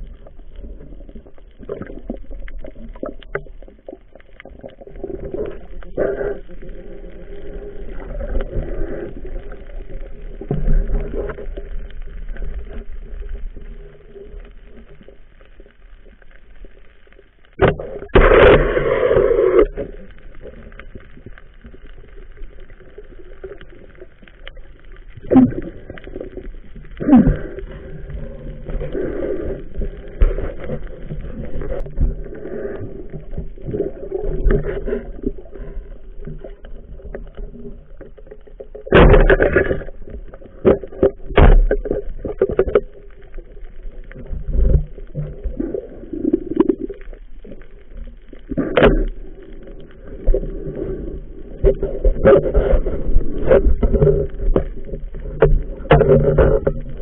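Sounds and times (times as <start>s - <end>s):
underwater bubbling: 0.0s - 57.0s.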